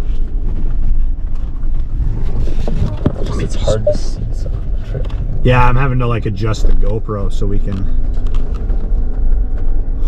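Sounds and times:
engine rumbling inside car: 0:00.0 - 0:10.0.

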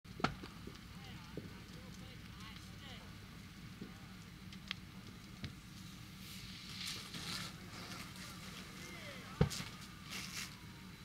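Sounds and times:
fire popping: 0:00.1 - 0:11.0
fire rumbling: 0:00.1 - 0:11.0
distant voices: 0:00.3 - 0:11.0.

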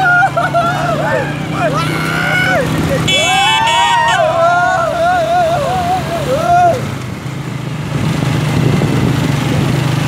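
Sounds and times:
men whooping and calling out: 0:00.0 - 0:07.0
motorcycle engine running: 0:00.0 - 0:10.0.

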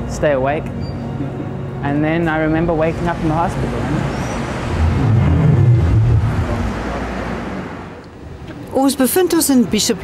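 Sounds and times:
loud steady low rumble: 0:04.4 - 0:07.8.

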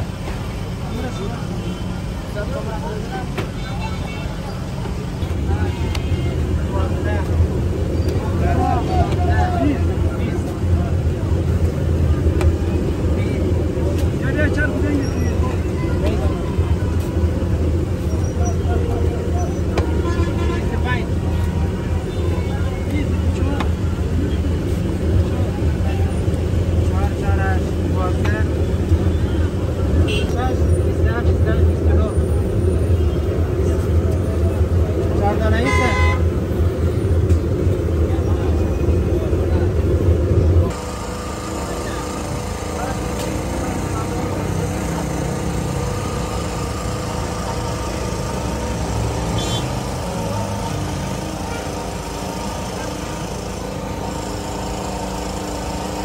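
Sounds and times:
people's voices: 0:00.0 - 0:56.0
road traffic rumble: 0:00.0 - 0:56.0.

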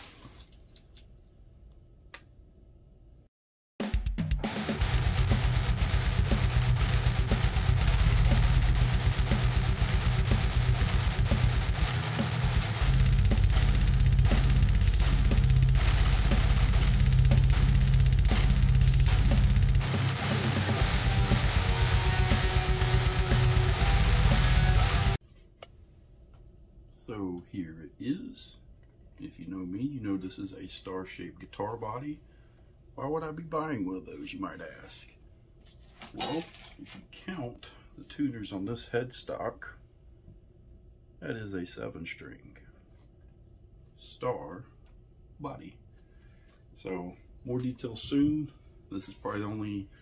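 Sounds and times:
fast bass drum: 0:03.8 - 0:25.2
rock music with electric guitar: 0:04.0 - 0:25.2.

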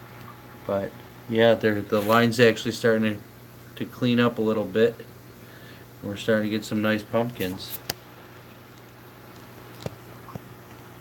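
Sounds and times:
faint hiss: 0:00.7 - 0:08.3.

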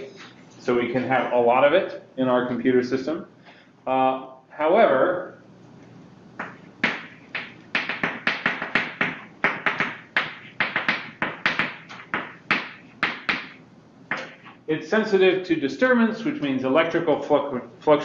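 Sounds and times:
chalk tapping and scraping on blackboard: 0:06.4 - 0:14.6.

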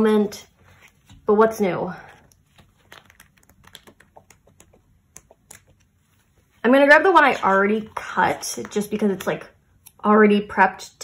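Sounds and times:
paper pages clicking and flipping: 0:02.2 - 0:06.0.

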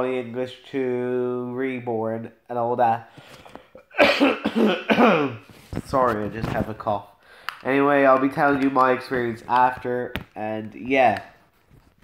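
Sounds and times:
man talking: 0:00.0 - 0:03.1, 0:05.2 - 0:11.4
person coughing: 0:03.8 - 0:05.5.

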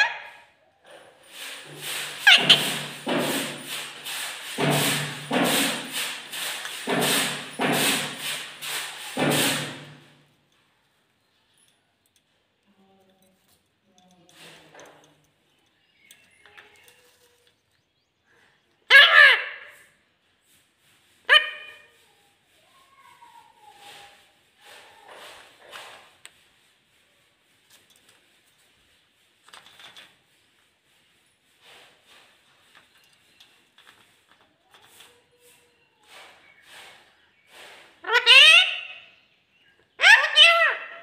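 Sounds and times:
parakeet calling and chattering: 0:38.0 - 0:39.0, 0:40.0 - 0:41.0.

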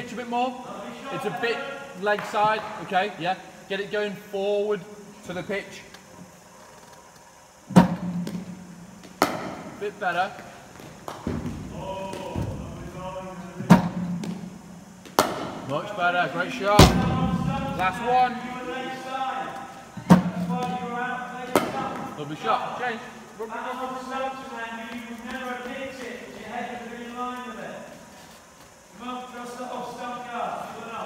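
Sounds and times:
bat striking ball: 0:07.7 - 0:09.8, 0:13.6 - 0:15.7, 0:21.4 - 0:22.2
bowling machine thump and hum: 0:07.7 - 0:09.8, 0:10.8 - 0:15.8, 0:16.7 - 0:18.2, 0:19.9 - 0:22.2
loud thump: 0:16.8 - 0:18.0.

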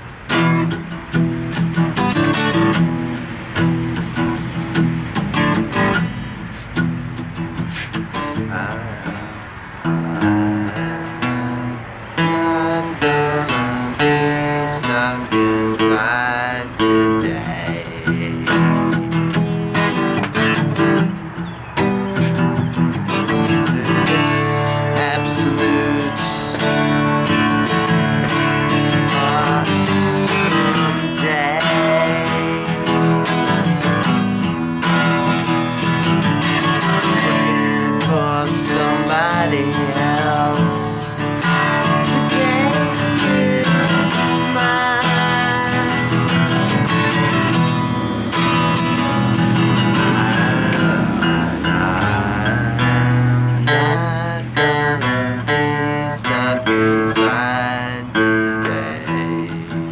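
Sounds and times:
acoustic guitar strumming chords: 0:00.0 - 0:59.9.

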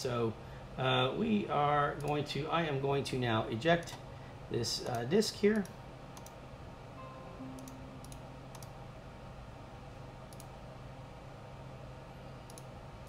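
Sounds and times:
low steady hum: 0:00.0 - 0:13.0
computer mouse clicks: 0:04.8 - 0:06.4, 0:10.3 - 0:10.5, 0:12.5 - 0:12.7.

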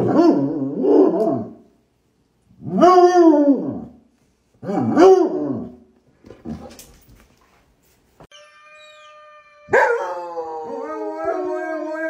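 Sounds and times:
dog howling: 0:08.3 - 0:12.0.

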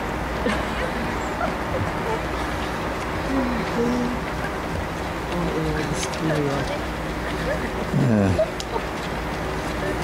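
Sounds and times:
outdoor background noise: 0:00.0 - 0:10.0
faint voices: 0:00.5 - 0:10.0.

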